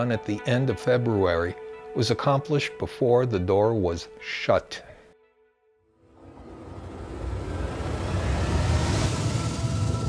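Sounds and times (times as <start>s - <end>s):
outro music: 5.9s - 10.0s
deep sci-fi rumble: 6.0s - 10.0s
rising hiss: 6.2s - 10.0s.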